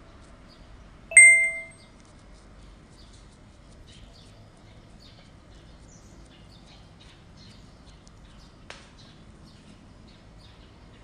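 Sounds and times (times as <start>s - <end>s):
notification chime ding: 1.1s - 1.7s.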